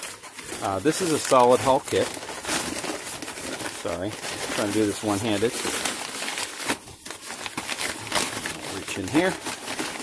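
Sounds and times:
wrapping paper crinkling: 0:00.0 - 0:10.0.

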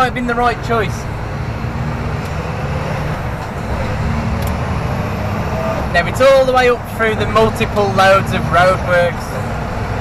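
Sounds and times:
lorry diesel engine drone: 0:00.0 - 0:10.0.

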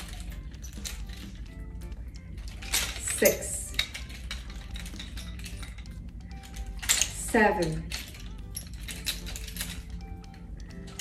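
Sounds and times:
faint background music: 0:00.0 - 0:11.0
nunchucks clicking and rattling: 0:00.0 - 0:11.0.

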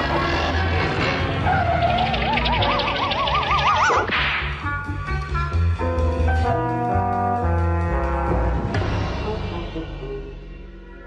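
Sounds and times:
wavering whistle-like tone: 0:02.0 - 0:04.1.

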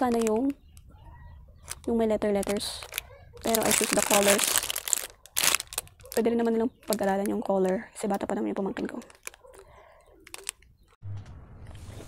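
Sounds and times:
plastic bag crinkling: 0:00.0 - 0:00.6, 0:01.6 - 0:10.7.

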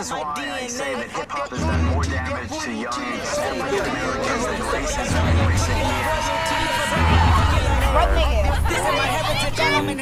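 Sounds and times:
voices talking over one another: 0:00.0 - 0:10.0
low bass tone: 0:04.6 - 0:09.2.

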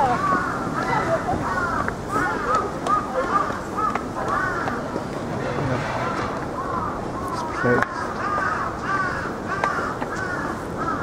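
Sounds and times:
crow cawing: 0:00.0 - 0:05.0, 0:05.6 - 0:11.0.

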